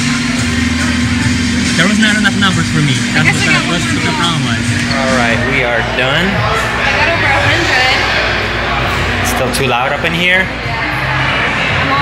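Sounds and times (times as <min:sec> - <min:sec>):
low hum: 0:00.0 - 0:09.4
busy indoor venue din: 0:00.0 - 0:12.0
man talking: 0:01.8 - 0:06.4.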